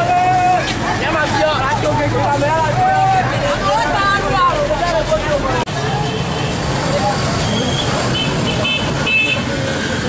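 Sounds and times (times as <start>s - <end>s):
crowd marching: 0.0s - 10.0s
motorbike and car traffic: 0.0s - 10.0s
voices: 0.0s - 10.0s.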